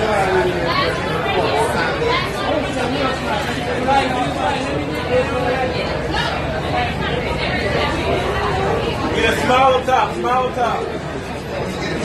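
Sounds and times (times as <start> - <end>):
babble of crowd voices: 0.0 - 12.0.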